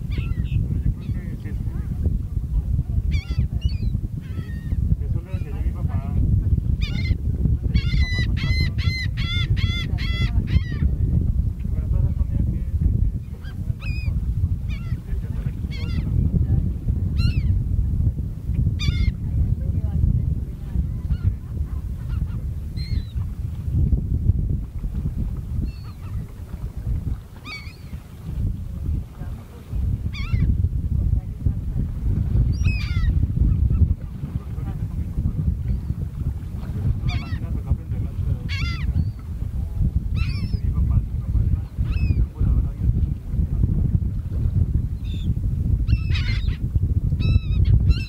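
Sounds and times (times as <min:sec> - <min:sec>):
gulls calling: 0:00.0 - 0:01.3, 0:03.1 - 0:05.6, 0:06.8 - 0:10.9, 0:13.4 - 0:16.1, 0:17.2 - 0:17.6, 0:18.8 - 0:19.2, 0:22.0 - 0:23.2, 0:25.6 - 0:26.3, 0:27.3 - 0:28.1, 0:29.5 - 0:30.6, 0:32.5 - 0:33.9, 0:37.0 - 0:37.5, 0:38.4 - 0:39.3, 0:40.1 - 0:40.8, 0:41.6 - 0:42.3, 0:45.9 - 0:46.6
steady low rumble: 0:00.0 - 0:48.0.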